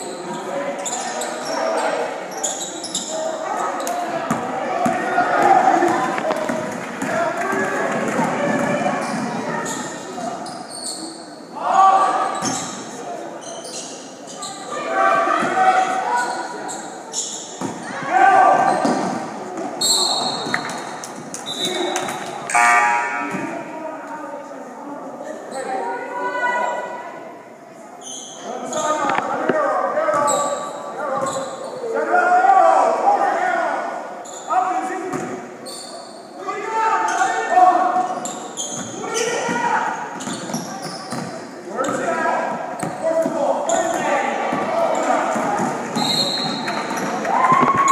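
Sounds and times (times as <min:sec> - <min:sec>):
sneakers squeaking: 0:00.2 - 0:05.1, 0:08.0 - 0:11.4, 0:12.0 - 0:14.8, 0:15.4 - 0:23.6, 0:28.0 - 0:29.4, 0:30.1 - 0:31.9, 0:34.2 - 0:34.5, 0:35.1 - 0:36.4, 0:37.9 - 0:42.1, 0:42.7 - 0:47.9
sneakers squeaking on hardwood: 0:08.5 - 0:11.2, 0:12.3 - 0:12.8, 0:30.1 - 0:31.8, 0:38.0 - 0:42.1, 0:45.4 - 0:47.2.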